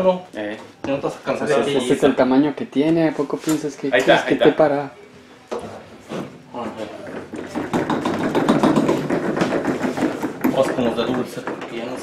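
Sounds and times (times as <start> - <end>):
piano wheels rolling on wood floor: 6.6 - 12.0.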